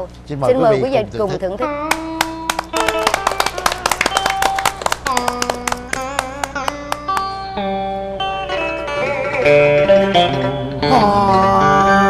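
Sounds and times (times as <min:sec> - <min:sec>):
plucked electric guitar runs: 0:01.8 - 0:12.0.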